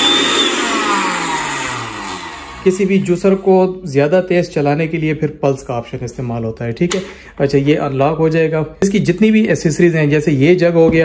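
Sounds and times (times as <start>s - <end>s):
food processor motor whine: 0.0s - 3.6s.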